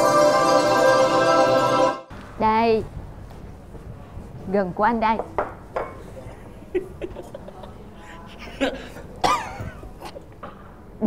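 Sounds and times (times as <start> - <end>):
man laughing muffled: 6.7 - 9.9.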